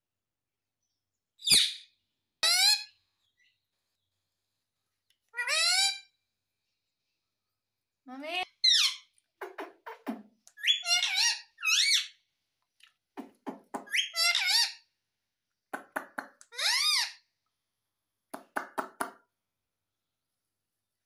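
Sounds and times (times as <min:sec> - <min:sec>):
parakeet squeaky calls: 0:01.4 - 0:03.0, 0:05.4 - 0:06.1, 0:08.6 - 0:09.1, 0:10.6 - 0:12.2, 0:13.8 - 0:14.8, 0:16.5 - 0:17.2.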